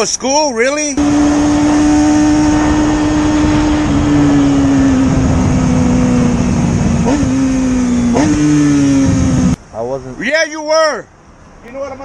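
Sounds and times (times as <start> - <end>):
motorcycle engine running: 1.0 - 9.6
wind rush on microphone: 1.0 - 9.6.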